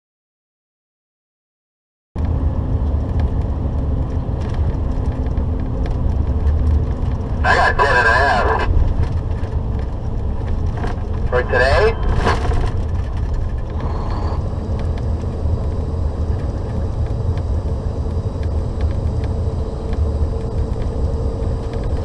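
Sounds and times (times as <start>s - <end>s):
truck engine and tyre drone: 2.2s - 22.0s.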